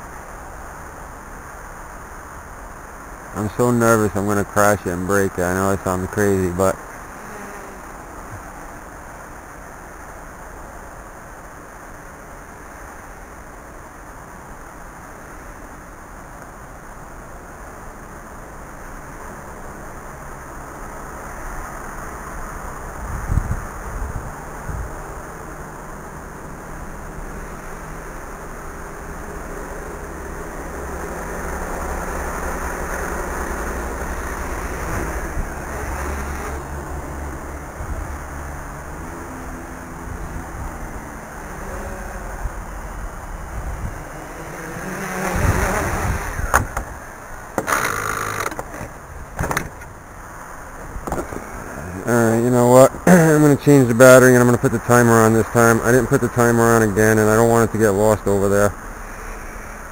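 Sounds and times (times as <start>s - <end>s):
wind on microphone: 22.9s - 25.1s, 41.5s - 47.0s
quadcopter propellers buzzing: 23.2s - 38.0s, 38.9s - 49.6s, 51.0s - 59.9s.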